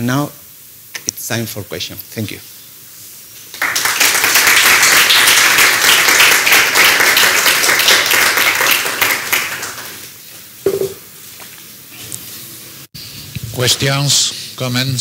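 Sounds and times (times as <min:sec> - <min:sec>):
audience applauding: 0:03.5 - 0:10.1.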